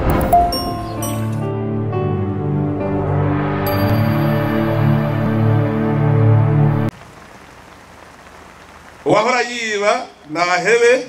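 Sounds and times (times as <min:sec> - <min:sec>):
steady outdoor hiss: 0:03.7 - 0:11.0.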